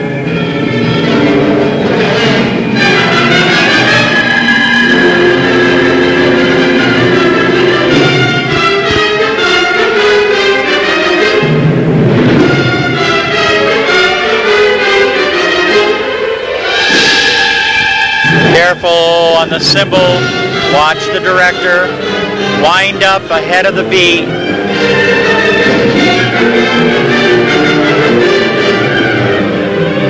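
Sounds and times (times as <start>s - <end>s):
wind ensemble playing chords: 0.0s - 30.0s.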